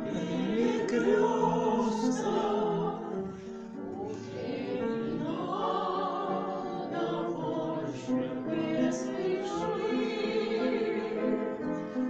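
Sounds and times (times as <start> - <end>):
women singing in harmony: 0.0 - 11.9
piano accompaniment: 0.0 - 12.0.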